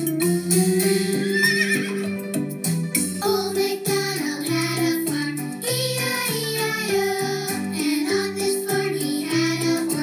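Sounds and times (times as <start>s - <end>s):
children's tune on electronic keyboard: 0.0s - 10.0s
horse whinny: 1.2s - 2.2s.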